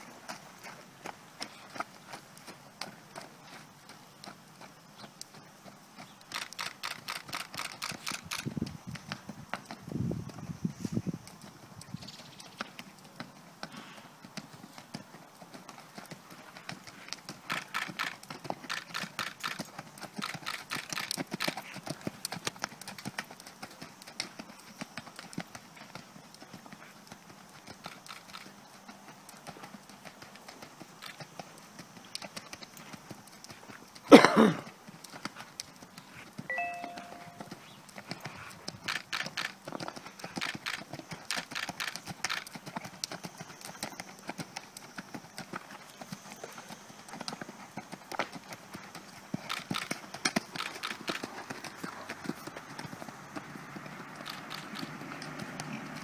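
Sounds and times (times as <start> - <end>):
horse hooves trotting on sand: 0.0 - 56.0.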